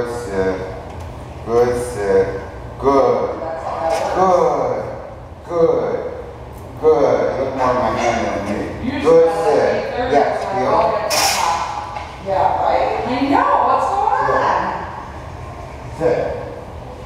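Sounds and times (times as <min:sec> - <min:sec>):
person talking in large room: 0:00.0 - 0:17.0.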